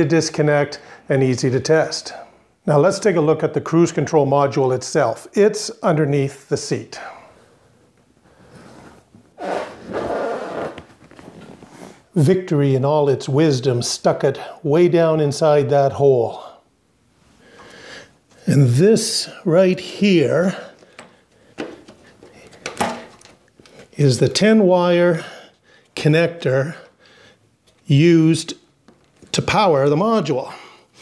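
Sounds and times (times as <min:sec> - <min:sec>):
motorcycle seat scraping: 0:08.6 - 0:12.1
handling noise: 0:20.9 - 0:23.9.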